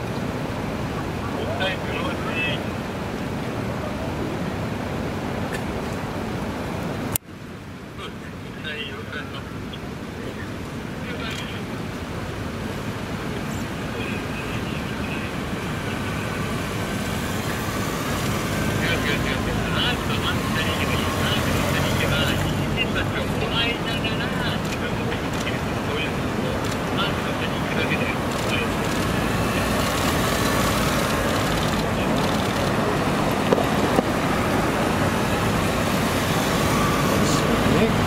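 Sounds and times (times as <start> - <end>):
traffic rumble: 0.0 - 38.0
indistinct voices: 13.5 - 38.0.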